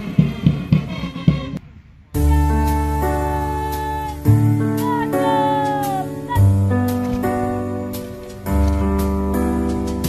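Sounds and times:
music with heavy drum beats: 0:00.0 - 0:01.6.

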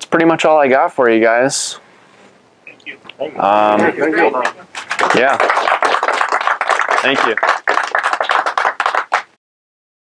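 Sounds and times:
audience applauding: 0:03.4 - 0:09.4.

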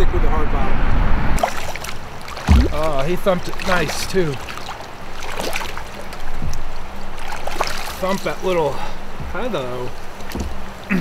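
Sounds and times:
water splashing: 0:01.4 - 0:10.9
low thump: 0:02.5 - 0:02.9.

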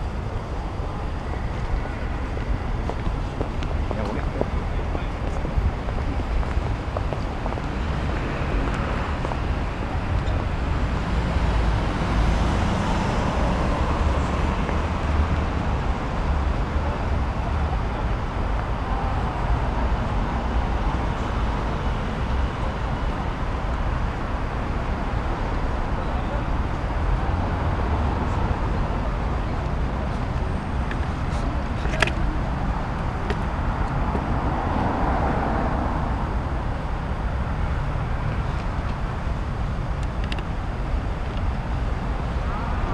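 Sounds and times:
road traffic rumble: 0:00.0 - 0:42.9.

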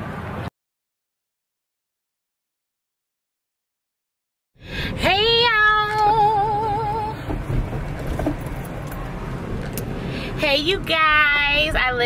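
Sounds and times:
car cabin rumble: 0:04.9 - 0:12.0.

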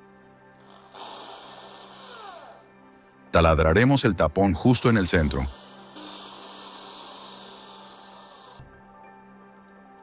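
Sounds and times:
electric drill spinning freely: 0:00.6 - 0:02.7, 0:04.8 - 0:08.6.

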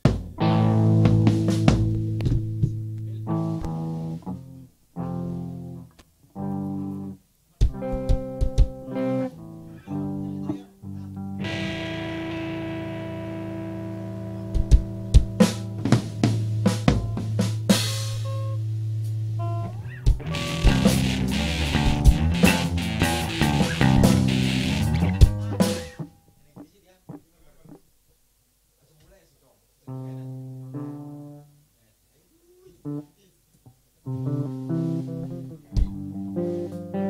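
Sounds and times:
rock band playing live: 0:00.0 - 0:02.6, 0:11.2 - 0:18.6, 0:19.4 - 0:26.0.

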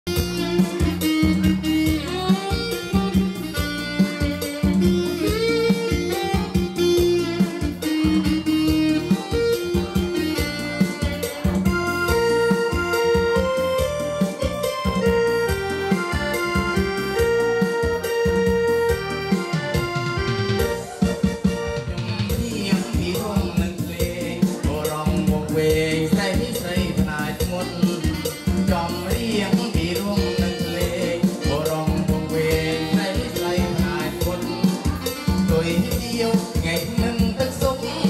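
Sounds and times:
bass: 0:00.0 - 0:38.0
plucked guitar-like melody: 0:00.1 - 0:38.0
steady drum beat: 0:00.1 - 0:38.0.

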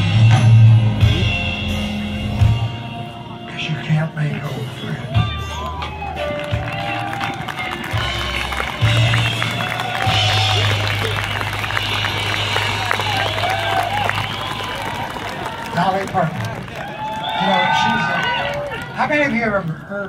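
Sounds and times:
live band low bass notes: 0:00.0 - 0:16.9
audience chatter and calls: 0:00.0 - 0:20.0.

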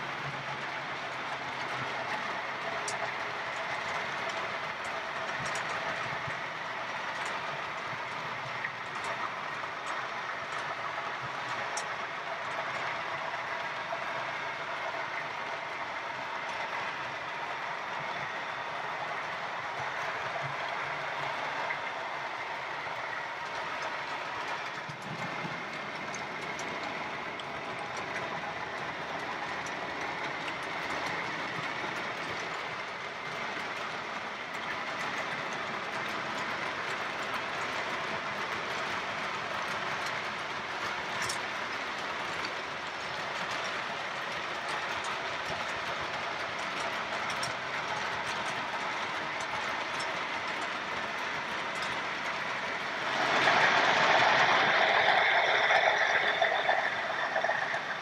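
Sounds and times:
model train wheels on rails: 0:00.0 - 0:58.0.

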